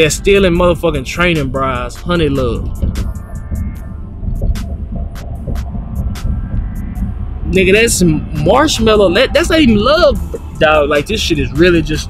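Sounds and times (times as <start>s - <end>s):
low rumble inside car cabin: 0.0s - 12.0s.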